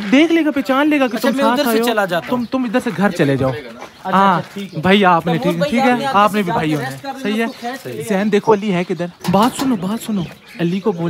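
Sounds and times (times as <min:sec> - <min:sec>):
man speaking: 0:00.0 - 0:11.0.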